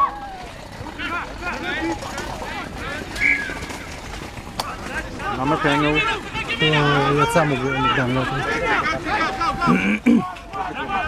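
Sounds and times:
distant voices shouting: 0.0 - 11.0.

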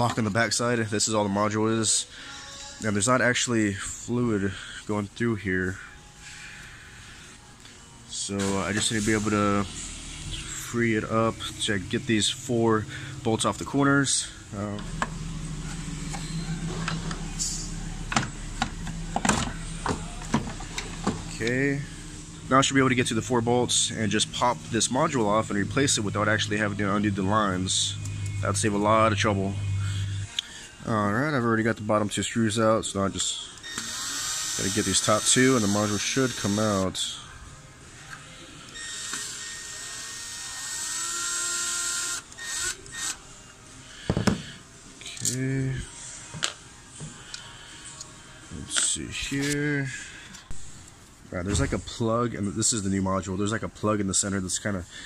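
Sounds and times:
steady low hum: 5.8 - 31.2
cordless drill motor whine: 14.8 - 30.3, 33.6 - 36.8, 38.8 - 43.2.

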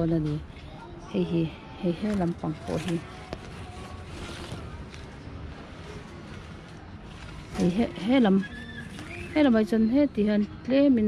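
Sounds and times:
woman talking: 0.0 - 0.4, 1.2 - 3.1, 7.6 - 8.5, 9.4 - 11.0.

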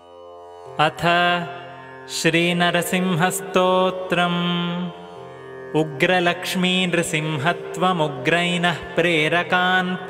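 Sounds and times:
man chanting: 0.8 - 5.1, 5.7 - 10.0.

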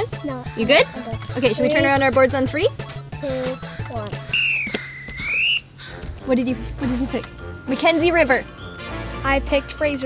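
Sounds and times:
soft background music: 0.0 - 10.0
whistle-like tone dipping in pitch: 4.3 - 5.7.

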